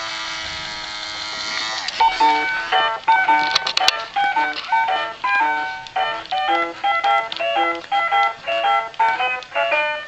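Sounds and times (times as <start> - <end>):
small electric toy motor buzzing: 0.0 - 3.7.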